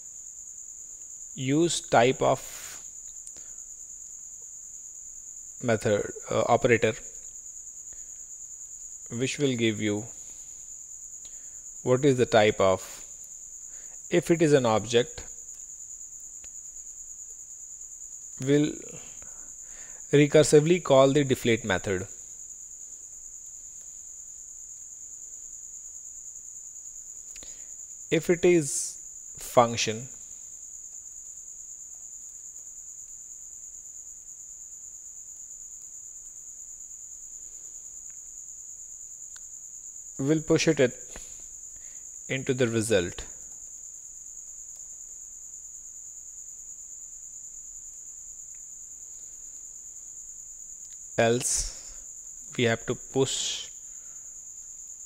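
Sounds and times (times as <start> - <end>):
man's voice: 1.4 - 2.7, 5.6 - 7.0, 9.1 - 10.1, 11.9 - 13.0, 14.1 - 15.2, 18.4 - 19.1, 20.1 - 22.1, 28.1 - 30.1, 40.2 - 41.0, 42.3 - 43.3, 51.2 - 52.0, 52.6 - 53.7.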